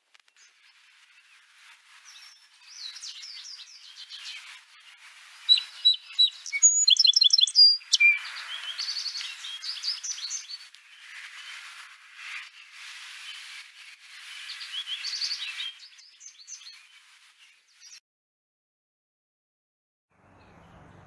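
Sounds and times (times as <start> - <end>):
songbirds chirping and singing: 1.2 - 12.5, 14.2 - 18.0.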